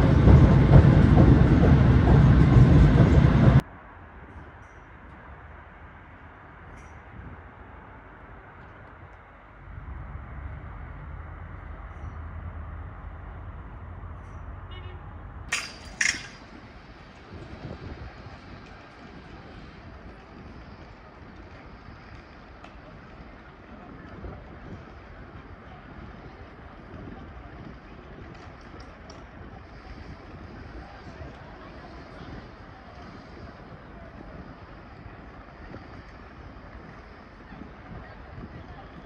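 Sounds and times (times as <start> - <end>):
faint voices: 16.1 - 39.0.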